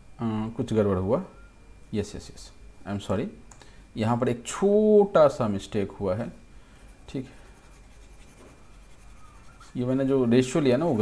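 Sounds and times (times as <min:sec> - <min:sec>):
stylus scratching on tablet screen: 0:06.9 - 0:10.0.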